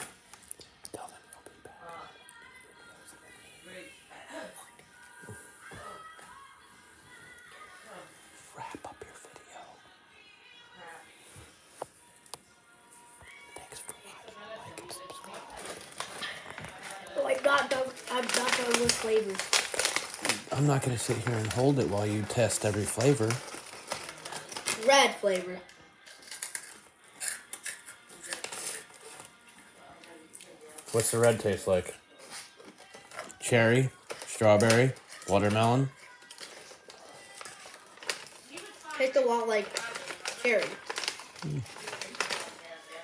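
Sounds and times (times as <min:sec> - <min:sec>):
person whispering: 0:00.8 - 0:02.2, 0:07.9 - 0:09.8, 0:13.5 - 0:15.4, 0:41.4 - 0:41.8
crisp crunching of candy: 0:14.8 - 0:29.3, 0:32.7 - 0:43.0
plastic bag rustling: 0:15.2 - 0:25.4, 0:32.7 - 0:43.0.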